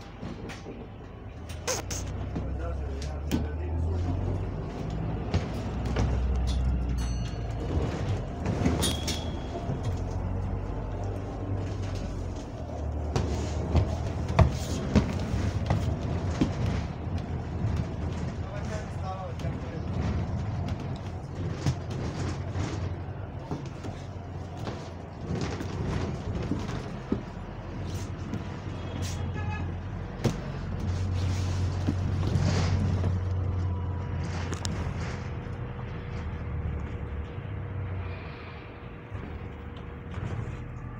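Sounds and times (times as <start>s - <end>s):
rattles and knocks of bus body: 0.0s - 37.9s, 39.0s - 40.9s
bus engine drone: 0.0s - 40.9s.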